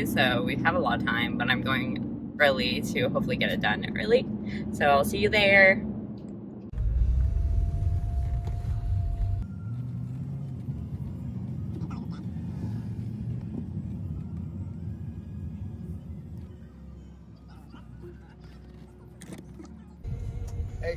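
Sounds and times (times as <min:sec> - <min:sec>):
car engine rumble: 0:00.0 - 0:20.9
engine whine: 0:00.0 - 0:20.9.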